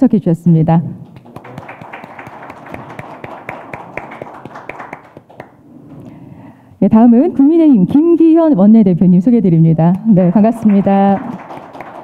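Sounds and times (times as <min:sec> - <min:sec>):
audience applause: 0:01.2 - 0:05.6, 0:10.4 - 0:12.0.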